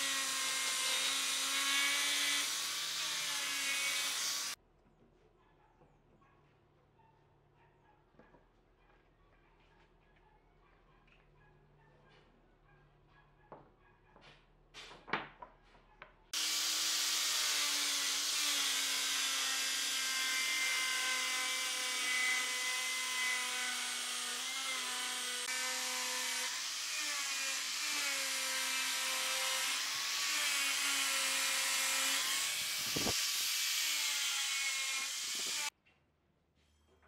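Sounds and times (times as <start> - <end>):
electric sander on wood: 0.0 - 4.6, 16.4 - 35.7.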